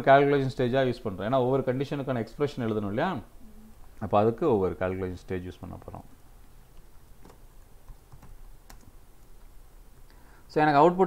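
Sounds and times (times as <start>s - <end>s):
low steady hum: 0.0s - 11.0s
computer keyboard typing: 6.7s - 9.4s.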